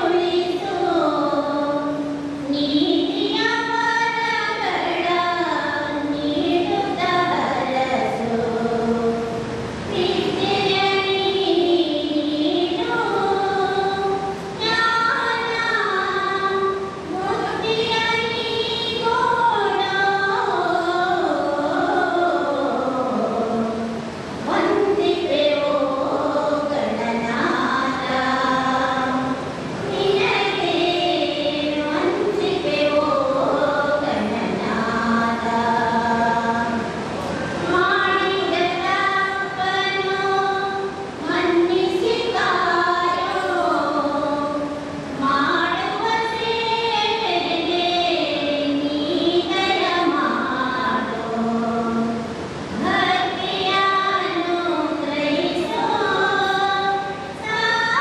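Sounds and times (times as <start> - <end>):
women singing together: 0.0 - 58.0.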